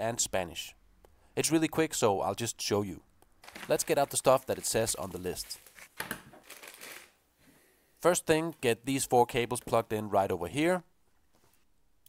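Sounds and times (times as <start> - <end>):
rustling of electronics parts: 3.4 - 7.2.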